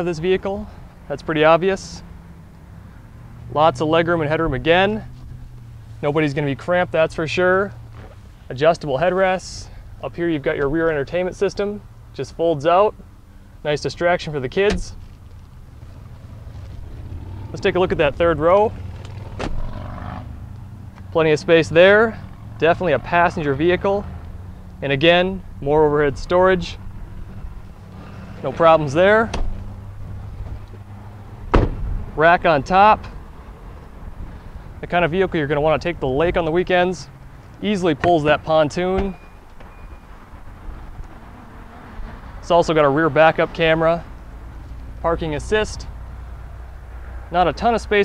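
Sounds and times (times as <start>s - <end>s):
vehicle cabin rumble: 14.4s - 21.3s, 25.4s - 32.3s.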